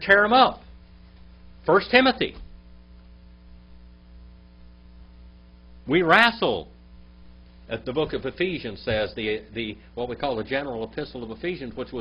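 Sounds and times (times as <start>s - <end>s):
man speaking: 0.0s - 0.6s, 1.7s - 2.4s, 5.9s - 6.7s, 7.7s - 12.0s
electrical mains hum: 0.0s - 12.0s.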